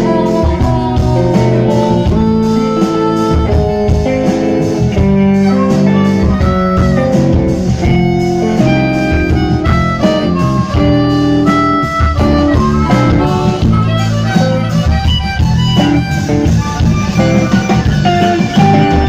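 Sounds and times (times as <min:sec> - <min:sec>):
electric bass: 0:00.0 - 0:19.0
electric guitar: 0:00.0 - 0:19.0
harmonica through microphone: 0:00.0 - 0:19.0.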